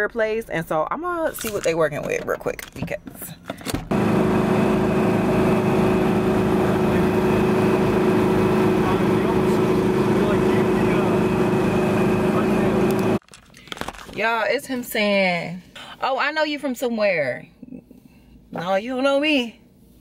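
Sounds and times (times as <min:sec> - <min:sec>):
machinery humming: 0:03.9 - 0:13.2.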